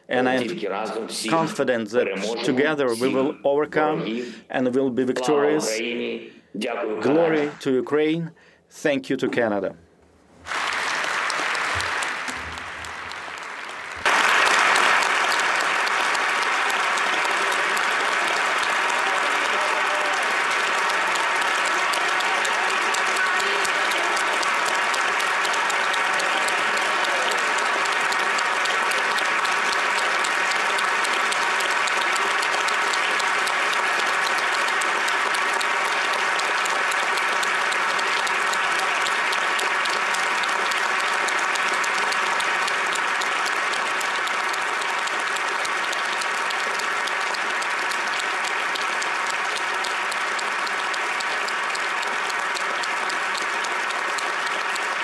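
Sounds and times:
crowd applause: 0:00.0 - 0:04.4, 0:05.2 - 0:05.8, 0:10.4 - 0:55.0.

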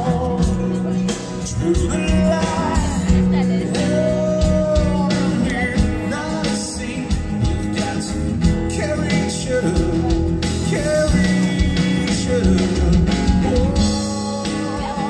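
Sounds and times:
person singing: 0:00.0 - 0:15.0
strummed acoustic guitar: 0:00.0 - 0:15.0.

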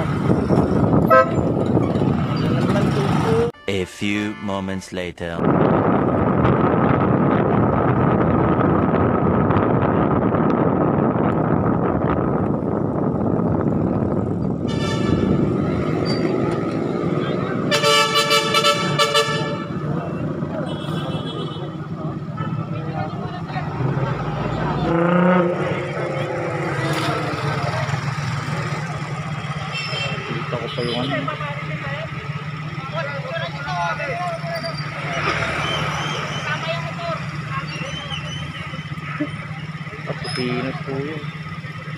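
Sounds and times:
wind and road noise: 0:00.0 - 0:03.6, 0:04.9 - 0:41.9
traffic engine hum: 0:00.0 - 0:03.9, 0:05.1 - 0:41.9
vehicle horn: 0:01.1 - 0:01.5, 0:14.6 - 0:15.6, 0:17.6 - 0:22.7, 0:29.6 - 0:31.3
people's voices: 0:02.4 - 0:05.6, 0:19.8 - 0:41.4.

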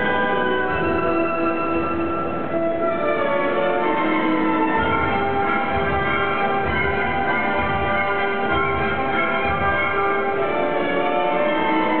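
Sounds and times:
orchestra playing held notes: 0:00.0 - 0:12.0.

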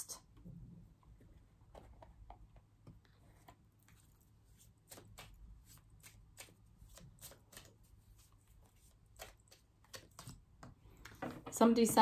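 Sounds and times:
cards shuffling: 0:03.3 - 0:11.2.

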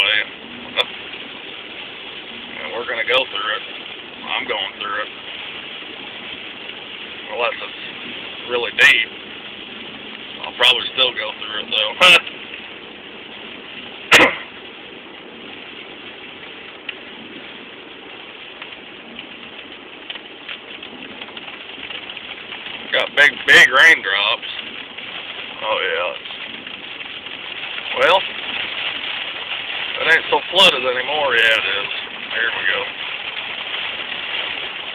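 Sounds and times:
heavy rain: 0:00.0 - 0:34.9
tyres running through water: 0:00.0 - 0:34.9
wet road noise: 0:00.0 - 0:34.9.

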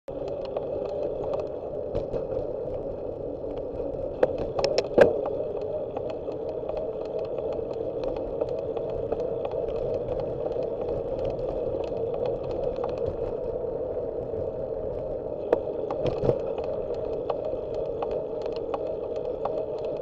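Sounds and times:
bike road noise: 0:00.1 - 0:20.0
small rattling ticks: 0:00.1 - 0:20.0
wind noise: 0:00.1 - 0:20.0.

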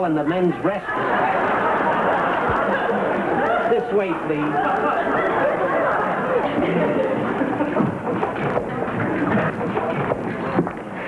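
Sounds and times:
audience laughter: 0:00.3 - 0:11.0.

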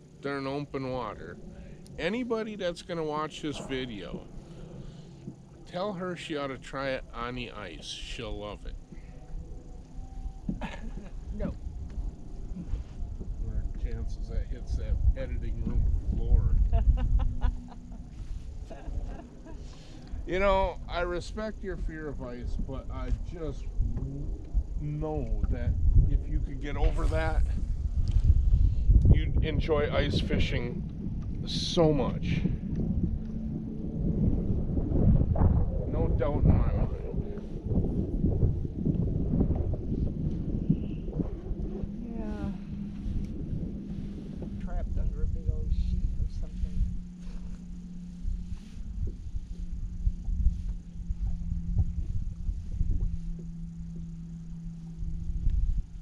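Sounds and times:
steady low hum: 0:00.0 - 0:56.0
wind buffeting microphone: 0:00.0 - 0:56.0
faint voices: 0:00.2 - 0:04.3, 0:05.7 - 0:09.3, 0:12.5 - 0:17.0, 0:17.7 - 0:27.6
man speaking: 0:00.2 - 0:04.3, 0:05.7 - 0:08.7, 0:13.4 - 0:16.6, 0:20.3 - 0:27.6, 0:29.1 - 0:30.8, 0:31.5 - 0:32.5, 0:35.9 - 0:37.4
burst of laughter: 0:10.6 - 0:11.2.

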